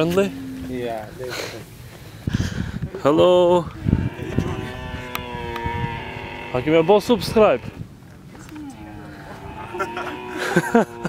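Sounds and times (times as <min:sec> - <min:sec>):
camel moaning: 0:00.0 - 0:01.1, 0:03.6 - 0:07.8, 0:08.5 - 0:11.0.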